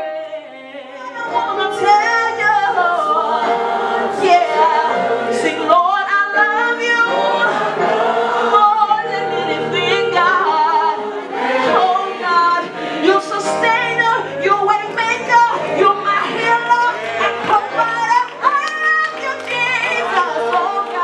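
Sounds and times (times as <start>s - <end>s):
woman leading singing on microphone: 0.0s - 7.7s, 8.4s - 21.0s
congregation singing: 0.0s - 21.0s.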